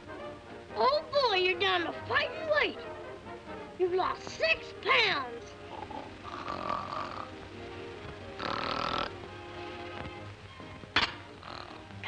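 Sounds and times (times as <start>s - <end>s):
soft background music: 0.0s - 12.0s
boy snoring: 5.6s - 7.4s, 8.3s - 9.2s, 11.4s - 12.0s.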